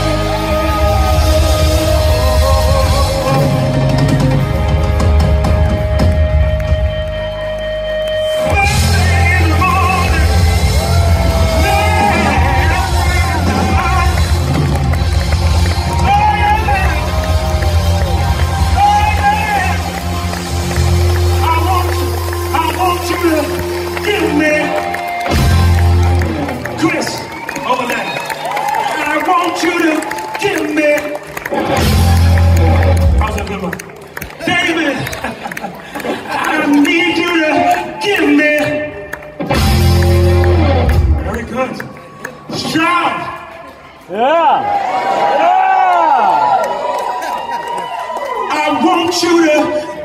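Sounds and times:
man singing lead vocal: 0:00.0 - 0:04.4
heavy bass: 0:00.0 - 0:27.1, 0:31.4 - 0:33.7, 0:38.6 - 0:41.6
rock band playing live: 0:00.0 - 0:44.2
crowd noise: 0:00.0 - 0:50.0.

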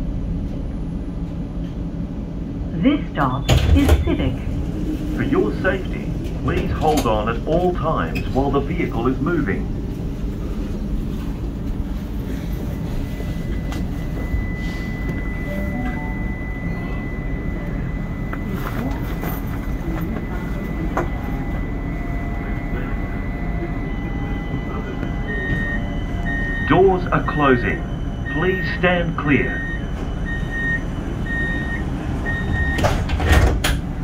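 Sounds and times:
tram low hum: 0:00.0 - 0:34.0
door-closing warning beeps: 0:03.2 - 0:04.4, 0:13.0 - 0:33.7
thin steady high tone: 0:14.4 - 0:18.3.

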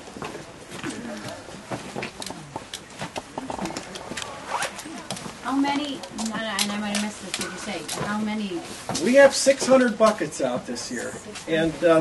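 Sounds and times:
jackets rustling: 0:03.6 - 0:09.9.

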